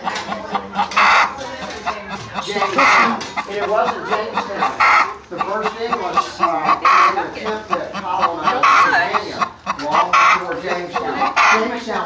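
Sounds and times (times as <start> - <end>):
hen clucking and squawking: 0.0 - 12.0
loud hen calls: 1.9 - 5.2, 5.8 - 11.7.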